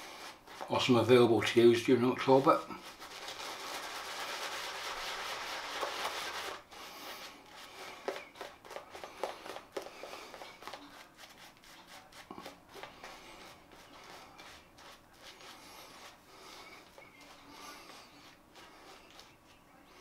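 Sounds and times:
shaving brush rubbing on lather: 0.0s - 19.6s.

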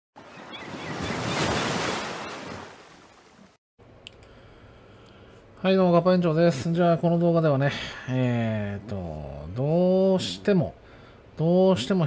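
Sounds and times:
ocean wave breaking: 0.2s - 3.6s.

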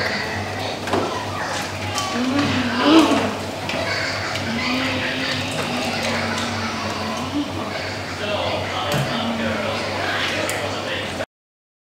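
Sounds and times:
child imitating motorbike engine: 2.0s - 8.2s.

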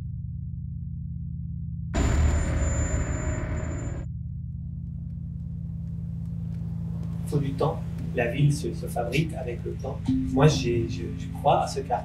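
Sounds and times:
low droning tone: 0.0s - 12.0s
loud rumble: 2.0s - 5.7s.

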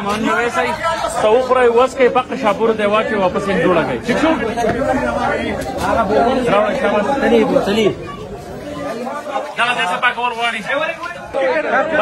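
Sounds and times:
men talking and chattering: 0.0s - 12.0s.

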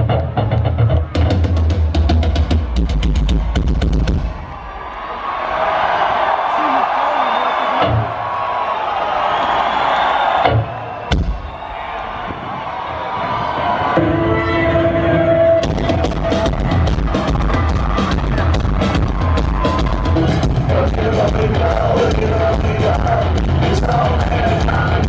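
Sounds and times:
crowd cheering and screaming: 0.0s - 25.0s
live rock band playing loudly: 14.0s - 25.0s.

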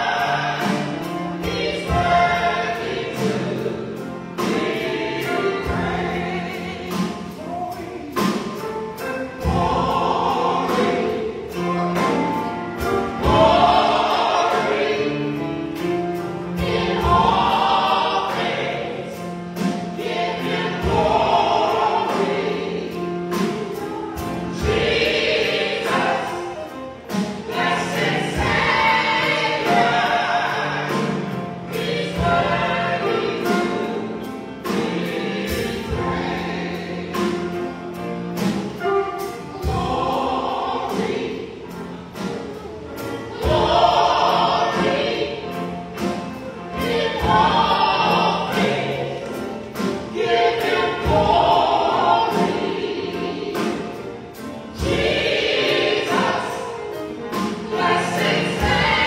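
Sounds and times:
drum kit beat: 0.0s - 59.0s
group of voices singing: 0.0s - 59.0s
keyboard: 0.0s - 59.0s.

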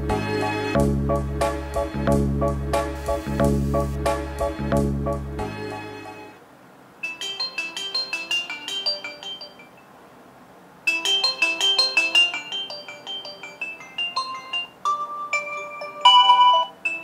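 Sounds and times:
marimba-like ringtone melody: 7.0s - 9.9s, 10.9s - 17.0s.

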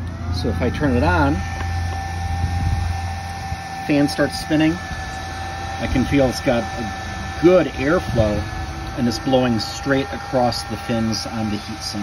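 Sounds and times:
cooling fan humming and whining: 0.0s - 12.0s.

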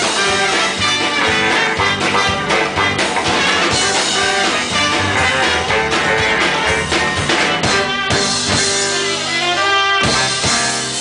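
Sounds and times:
drum hit: 0.0s - 9.1s
live band playing: 0.0s - 11.0s
trumpet and trombone long notes: 0.0s - 11.0s.

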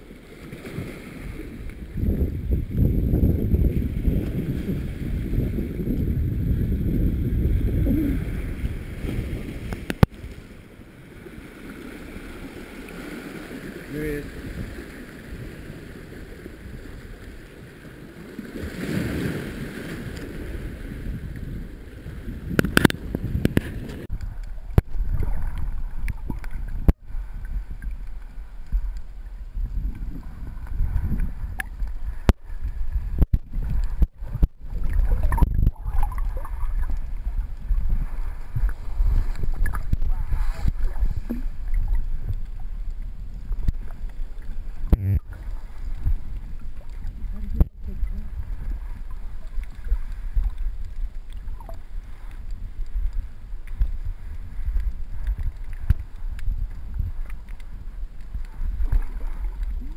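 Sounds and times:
underwater low rumble: 0.0s - 59.9s
small underwater clicks: 9.7s - 10.4s, 22.5s - 37.9s, 38.6s - 40.1s, 40.7s - 59.9s.

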